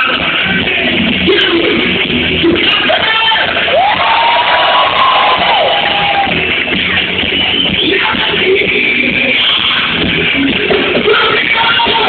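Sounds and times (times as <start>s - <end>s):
live rock band playing: 0.0s - 12.0s
crowd cheering: 2.9s - 8.4s.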